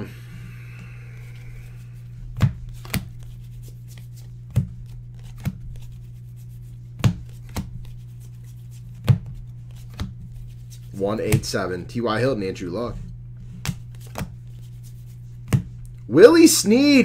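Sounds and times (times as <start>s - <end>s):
steady low hum: 0.0s - 17.0s
trading cards snapping: 2.3s - 6.1s, 6.9s - 11.6s, 13.6s - 16.0s.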